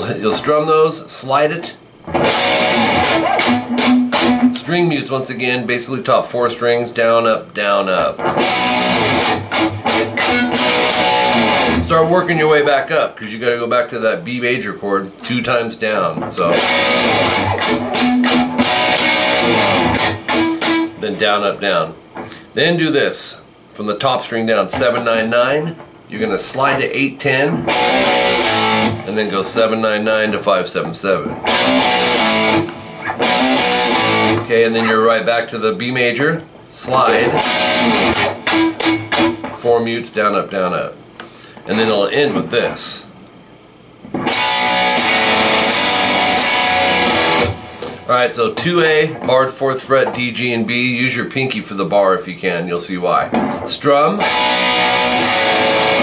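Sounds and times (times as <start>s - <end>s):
electric guitar strumming: 2.0s - 5.3s, 7.9s - 12.9s, 15.3s - 22.5s, 23.9s - 43.0s, 44.1s - 50.8s, 53.2s - 56.0s.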